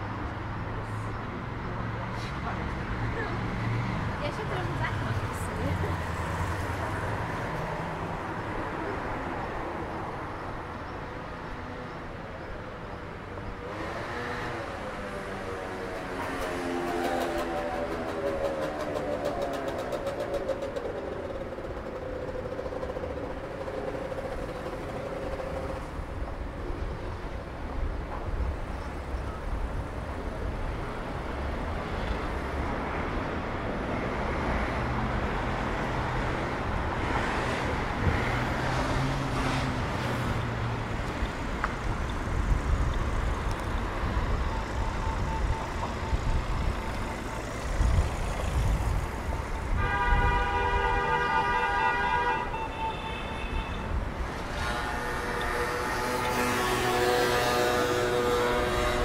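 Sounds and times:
cars passing: 0:00.0 - 0:59.0.

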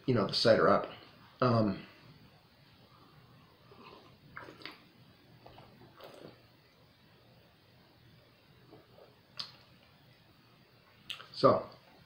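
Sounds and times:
man sipping and swallowing: 0:03.6 - 0:06.5, 0:08.6 - 0:09.7.

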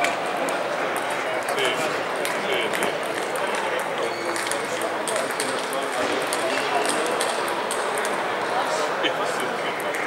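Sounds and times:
table tennis balls clicking: 0:00.0 - 0:08.5.

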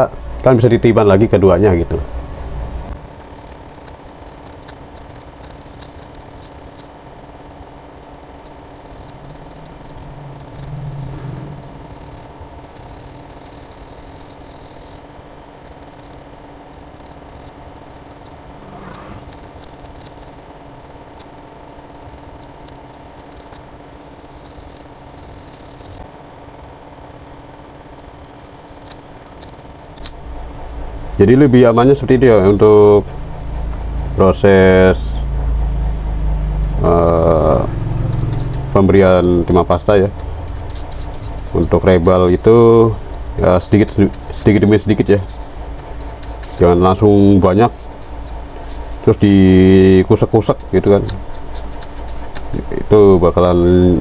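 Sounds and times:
steady electrical hum: 0:00.0 - 0:54.0
fingertip scraping metal stencil: 0:36.7 - 0:52.6.

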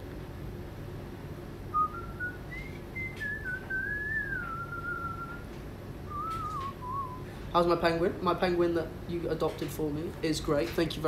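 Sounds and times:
person whistling a tune: 0:01.7 - 0:05.4, 0:06.1 - 0:07.3.

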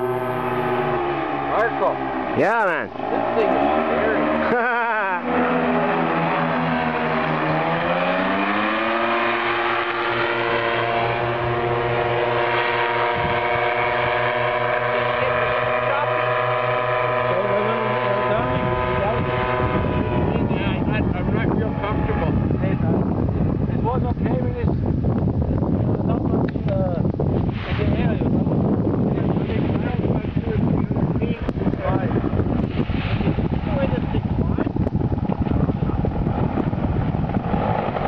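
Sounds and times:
wind noise on microphone: 0:00.0 - 0:04.6, 0:05.8 - 0:38.0
paramotor engine droning overhead: 0:00.0 - 0:38.0.

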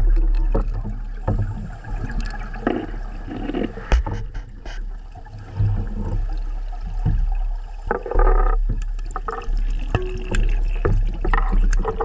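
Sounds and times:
diver's bubbles gurgling underwater: 0:00.0 - 0:12.0
diving gear knocks: 0:02.6 - 0:04.8, 0:06.9 - 0:12.0.

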